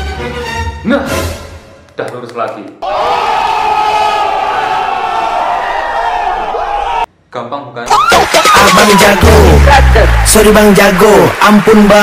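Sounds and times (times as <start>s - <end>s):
crowd shouting and cheering: 2.8s - 7.1s, 7.9s - 12.0s.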